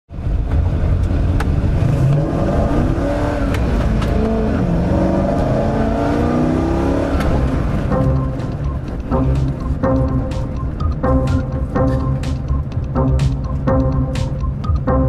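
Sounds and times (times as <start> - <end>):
car engine accelerating: 0.1 - 15.0
road noise: 0.1 - 15.0.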